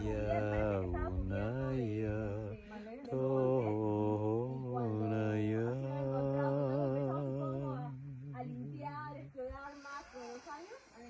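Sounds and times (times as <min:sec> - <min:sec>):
man chanting: 0:00.0 - 0:09.3
man breathing: 0:09.6 - 0:11.0.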